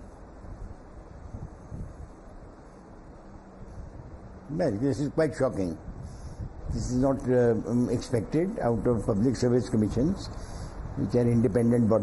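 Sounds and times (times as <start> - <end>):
faint hum: 0.0 - 12.0
microphone rumble and hiss: 0.0 - 12.0.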